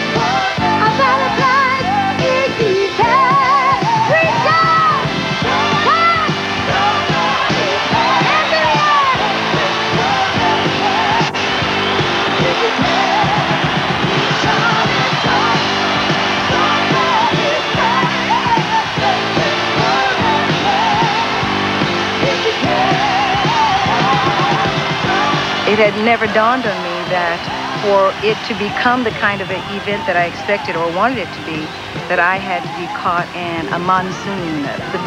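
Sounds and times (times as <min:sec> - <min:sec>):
woman singing with vibrato: 0:00.0 - 0:11.4, 0:16.5 - 0:35.0
band playing: 0:00.0 - 0:35.0.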